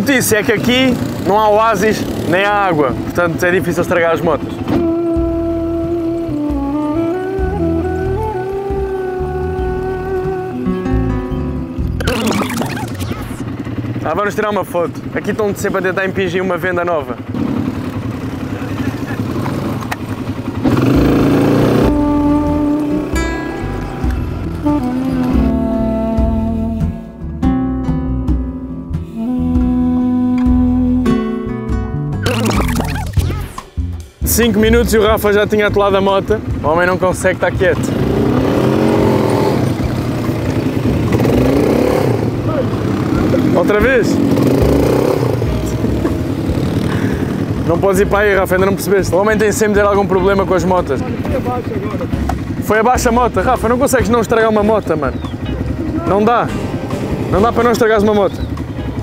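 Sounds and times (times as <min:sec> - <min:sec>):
quad bike engine running: 0:00.0 - 0:27.3, 0:32.2 - 0:59.0
plucked guitar music: 0:02.7 - 0:13.6, 0:20.1 - 0:42.6, 0:43.2 - 0:59.0.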